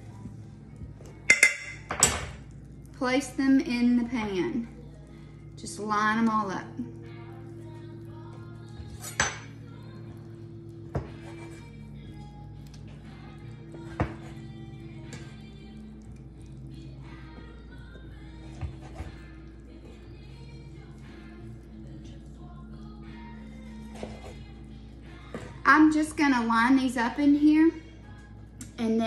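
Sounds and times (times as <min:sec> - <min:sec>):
quiet background music: 0:00.0 - 0:29.0
knife clinking against glass dish: 0:09.0 - 0:09.6.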